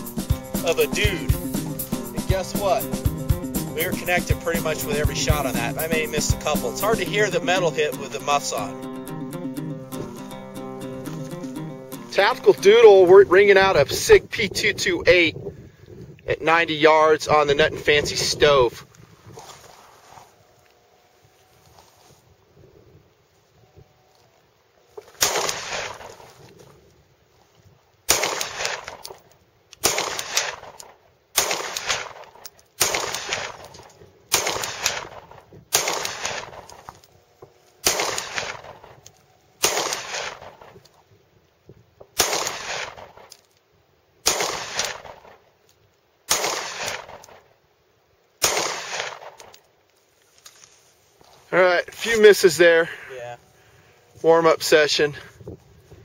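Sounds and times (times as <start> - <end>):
pistol shots: 25.2 - 26.3, 28.1 - 29.2, 29.8 - 36.9, 37.8 - 40.8, 42.2 - 43.4, 44.2 - 45.4, 46.3 - 47.5, 48.4 - 49.6.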